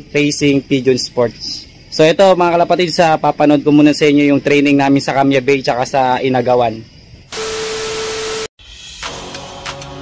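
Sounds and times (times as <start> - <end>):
static hiss with steady tone: 0.0 - 8.5.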